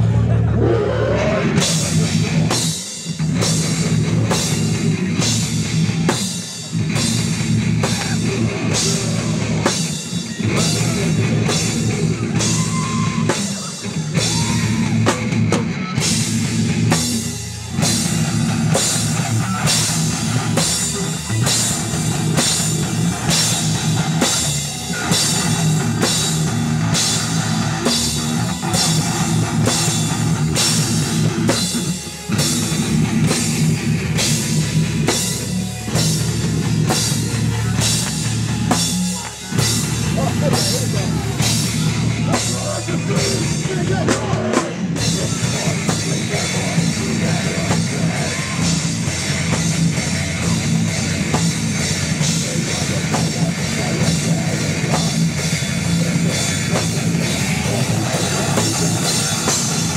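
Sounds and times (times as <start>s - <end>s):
heavy metal band playing: 0.0s - 59.9s.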